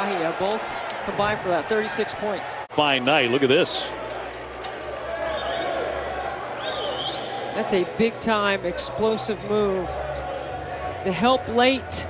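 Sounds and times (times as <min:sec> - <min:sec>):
arena ambience: 0:00.0 - 0:12.0.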